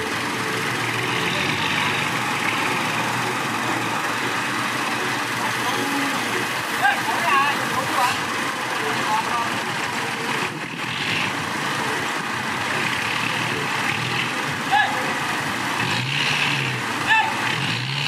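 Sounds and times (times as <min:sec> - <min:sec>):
diesel truck engine running: 0:00.0 - 0:18.0.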